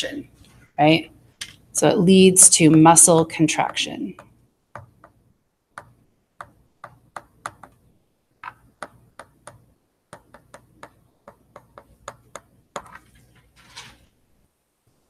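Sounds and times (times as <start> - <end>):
stylus tapping on tablet: 3.5 - 13.1.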